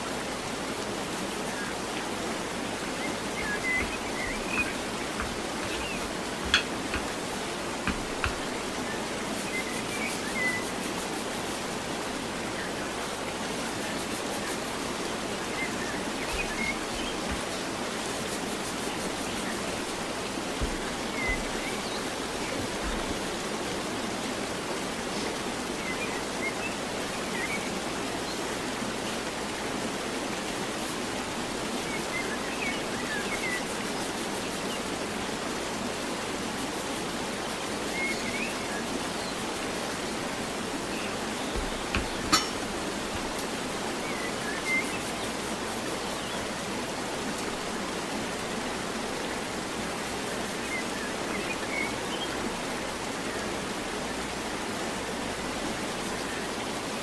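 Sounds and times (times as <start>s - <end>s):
steady hiss: 0.0s - 57.0s.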